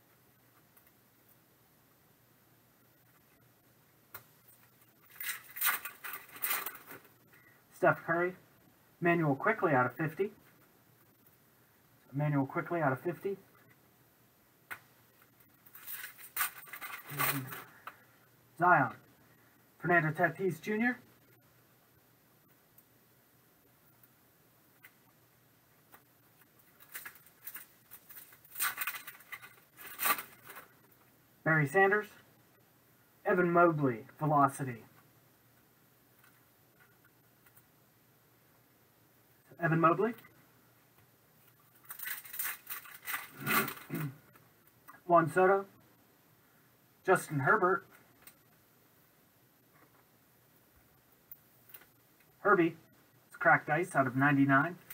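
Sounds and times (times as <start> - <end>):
foil wrapper crinkling and tearing: 41.8 - 44.0
trading cards scraping and sliding: 43.0 - 44.0.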